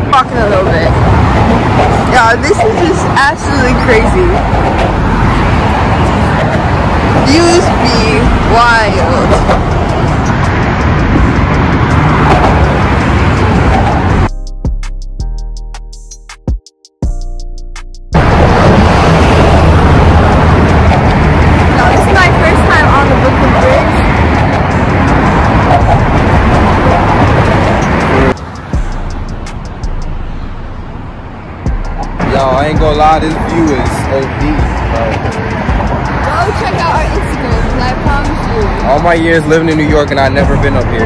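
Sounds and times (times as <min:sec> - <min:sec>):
road traffic: 0:00.0 - 0:41.0.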